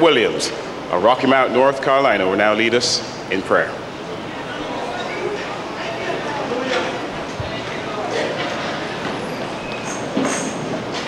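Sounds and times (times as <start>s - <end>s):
rushing room noise of a hall: 0.0s - 11.0s.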